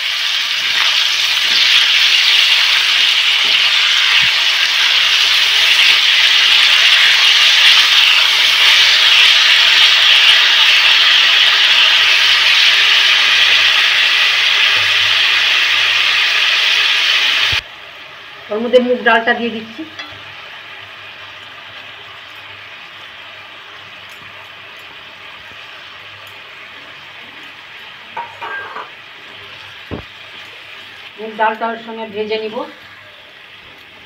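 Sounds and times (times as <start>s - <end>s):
vegetables sizzling in hot oil: 0.0s - 34.0s.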